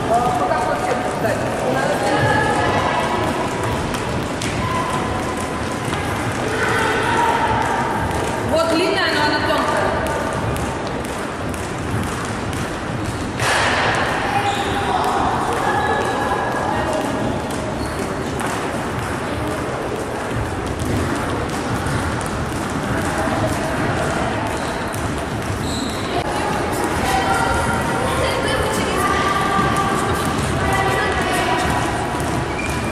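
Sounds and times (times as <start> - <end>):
skipping ropes slapping floor: 0.0 - 32.9
voices chattering: 14.0 - 32.9.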